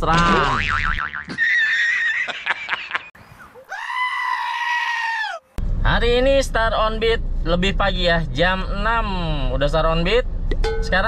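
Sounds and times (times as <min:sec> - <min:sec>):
goat screaming: 0:03.6 - 0:05.6.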